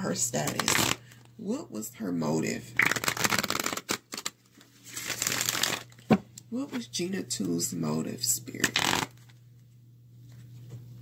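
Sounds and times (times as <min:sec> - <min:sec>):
cards being shuffled: 0:00.4 - 0:01.1, 0:02.8 - 0:06.2, 0:08.6 - 0:09.4.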